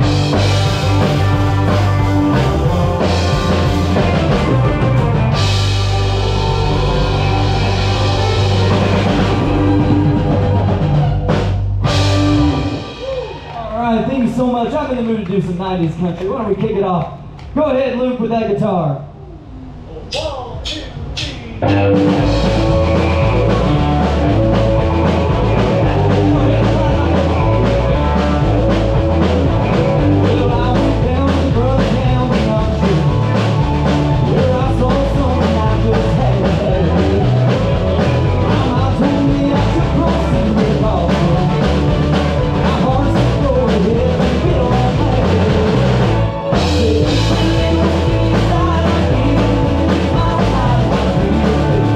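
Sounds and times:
live country band playing: 0.0 - 16.3, 21.6 - 51.9.

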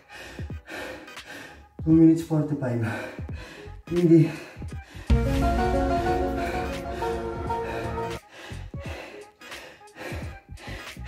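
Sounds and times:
man panting: 0.0 - 1.8, 2.7 - 11.0.

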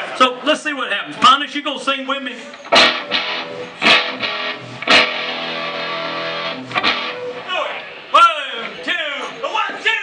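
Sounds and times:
electric guitar chord strummed: 2.8 - 7.2.

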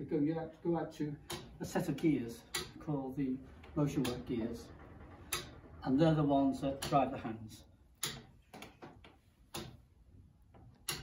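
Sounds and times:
clock ticking: 0.8 - 8.8, 9.4 - 9.9, 10.7 - 11.0.

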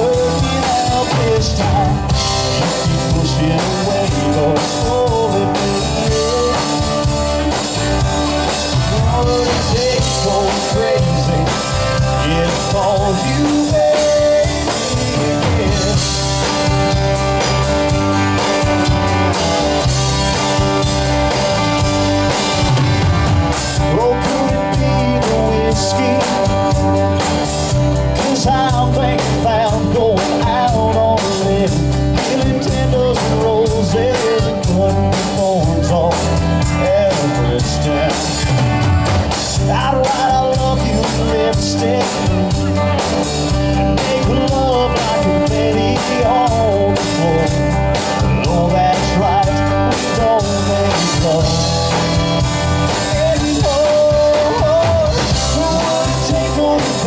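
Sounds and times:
man singing: 0.0 - 18.5, 23.6 - 57.0
acoustic guitar: 0.0 - 57.0
drum kit: 0.0 - 57.0
keyboard: 0.0 - 57.0.

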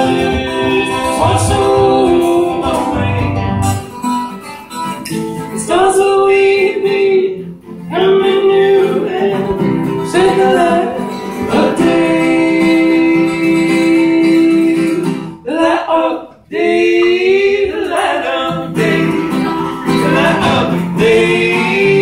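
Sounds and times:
woman and man singing: 0.0 - 3.4, 5.5 - 22.0
strummed acoustic guitar: 0.0 - 15.5, 16.6 - 22.0.

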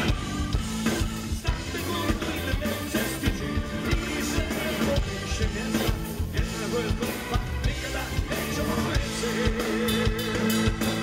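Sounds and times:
bass guitar: 0.0 - 11.0
drum kit beat: 0.0 - 11.0
electric guitar: 0.0 - 11.0.

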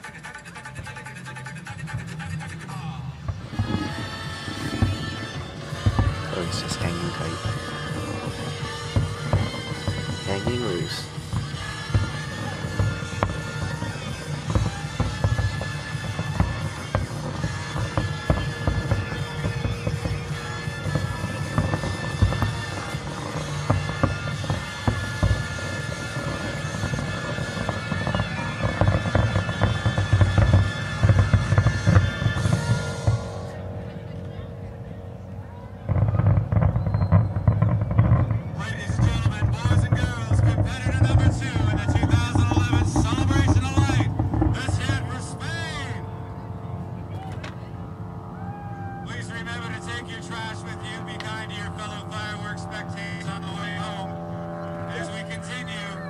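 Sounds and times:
voices: 0.0 - 31.2, 37.5 - 56.0
fireworks bursting: 0.0 - 33.8, 35.9 - 46.0
music over loudspeakers: 0.0 - 34.1, 36.3 - 46.2
loud low rumble: 2.0 - 56.0.

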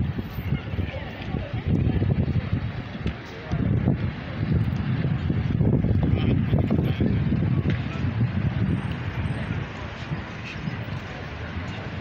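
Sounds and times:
background traffic: 0.0 - 12.0
faint voices: 0.0 - 12.0
wind buffeting microphone: 0.0 - 12.0.

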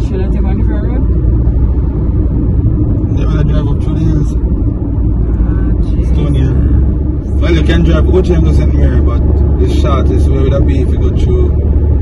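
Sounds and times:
people talking: 0.0 - 1.0, 3.1 - 4.4, 5.4 - 6.8, 7.4 - 11.5
car cabin road and engine rumble: 0.0 - 12.0.

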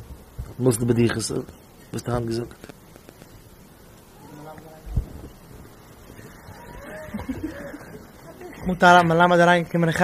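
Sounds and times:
microphone handling bumps: 4.9 - 5.7.

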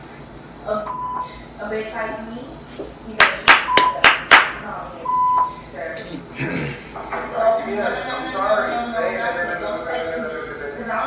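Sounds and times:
hands clapping: 3.2 - 4.6.

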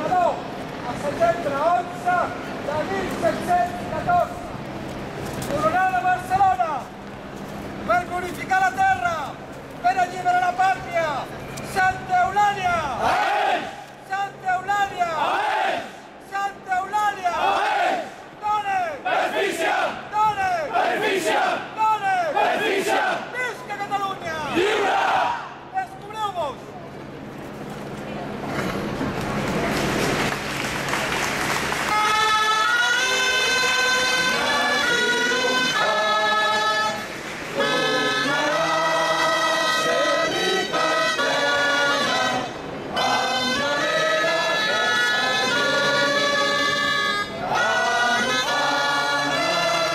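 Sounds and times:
large crowd chanting: 13.0 - 13.8, 15.2 - 16.1, 17.4 - 18.2, 19.0 - 20.1, 20.7 - 23.4, 24.5 - 25.6, 34.2 - 46.8, 47.4 - 49.9
group singing held notes: 32.2 - 49.9.

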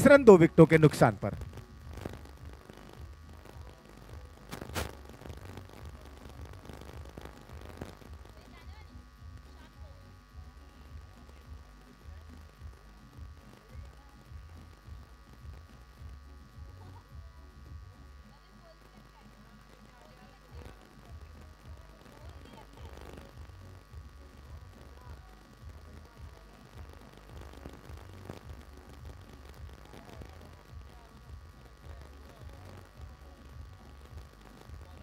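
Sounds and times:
low steady hum: 0.0 - 35.0
faint distant voices: 1.3 - 35.0.

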